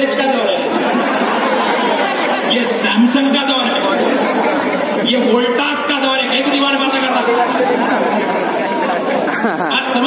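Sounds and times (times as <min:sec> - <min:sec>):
man speaking through microphone: 0:00.0 - 0:00.7, 0:02.5 - 0:04.1, 0:05.0 - 0:08.1, 0:09.3 - 0:10.0.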